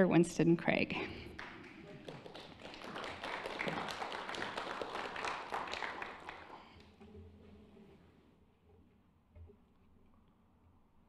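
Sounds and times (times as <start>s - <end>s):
audience applauding: 1.3s - 7.0s.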